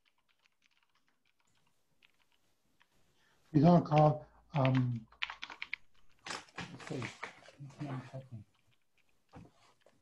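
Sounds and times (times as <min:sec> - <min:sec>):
computer keyboard typing: 0:00.0 - 0:02.9, 0:03.6 - 0:07.6.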